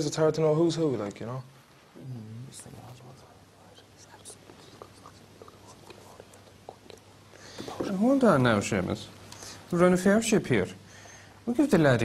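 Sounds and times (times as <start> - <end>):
low room hum: 0.0 - 12.0
man whispering: 1.9 - 8.2.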